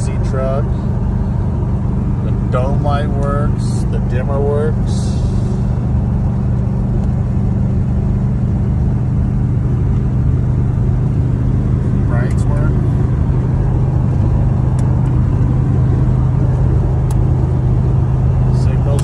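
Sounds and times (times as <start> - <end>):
road noise: 0.0 - 19.0
truck engine drone: 0.0 - 19.0.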